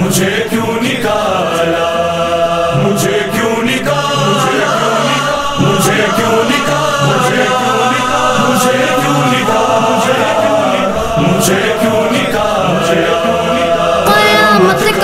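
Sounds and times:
chorus chanting in harmony: 0.0s - 15.0s.

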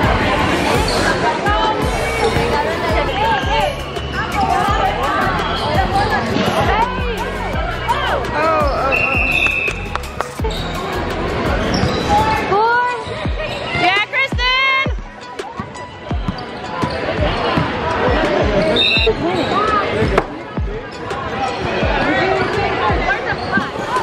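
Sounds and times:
sneakers squeaking: 2.1s - 6.8s, 8.6s - 14.1s, 15.0s - 24.0s.

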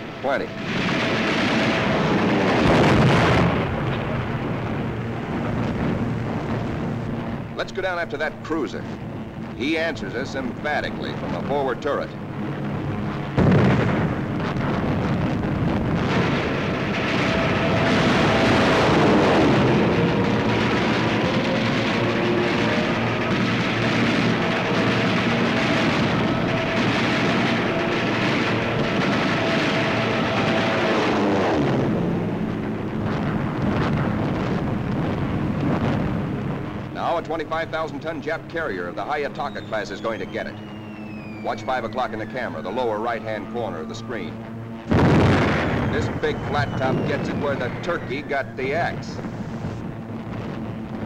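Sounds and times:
explosions: 0.0s - 51.0s
warplane engine drone: 0.0s - 51.0s
gunfire: 0.5s - 7.4s, 9.6s - 43.6s, 44.6s - 51.0s.

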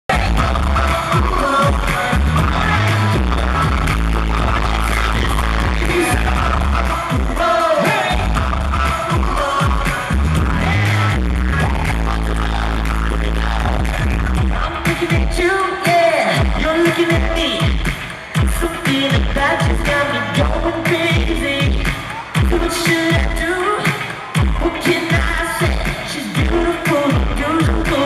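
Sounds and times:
live pop music: 0.1s - 28.0s
person singing: 0.1s - 28.0s.

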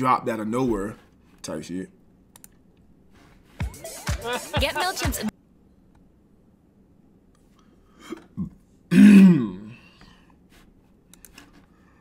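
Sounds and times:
man clearing his throat: 8.1s - 9.9s.

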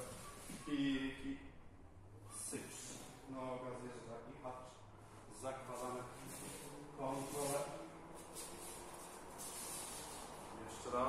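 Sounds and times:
bare feet on mat: 0.0s - 0.8s, 5.2s - 10.6s
cloth rustling: 5.6s - 10.6s.

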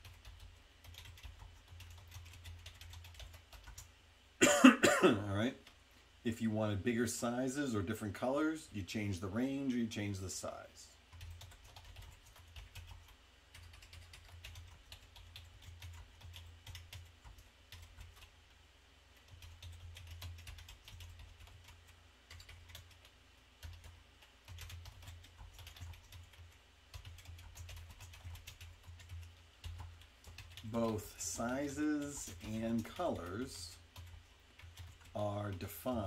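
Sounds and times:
typing on computer keyboard: 0.0s - 3.9s, 11.1s - 18.3s, 19.2s - 31.0s, 31.9s - 36.0s.

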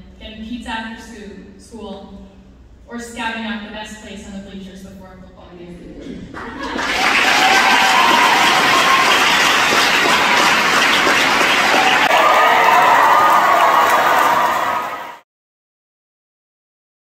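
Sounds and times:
crowd applauding: 6.4s - 15.2s
people cheering: 6.4s - 15.2s.

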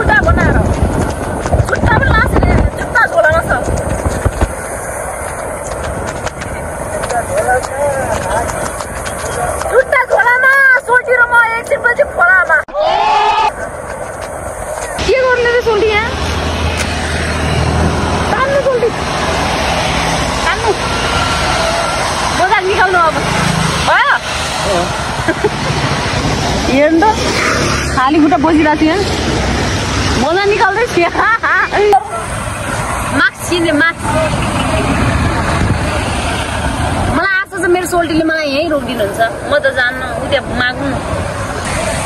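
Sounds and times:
woman's voice: 0.0s - 0.7s, 1.7s - 3.7s, 28.0s - 29.2s
wind buffeting microphone: 0.0s - 12.7s, 13.5s - 42.0s
wind and road noise: 0.0s - 42.0s.

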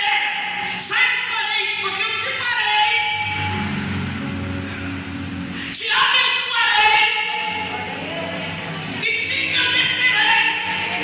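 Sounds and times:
electric keyboard chords: 1.9s - 6.1s, 7.0s - 11.0s.

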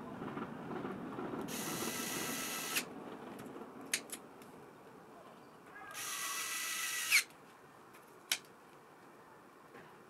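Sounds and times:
electric screwdriver whine: 1.5s - 2.8s, 6.0s - 7.3s.

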